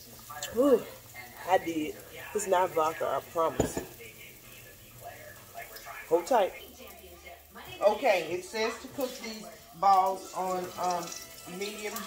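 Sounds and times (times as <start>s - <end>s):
faint television talk: 0.0s - 12.0s.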